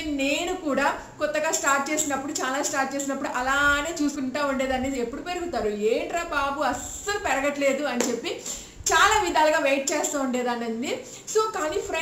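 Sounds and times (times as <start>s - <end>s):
woman talking: 0.0s - 12.0s.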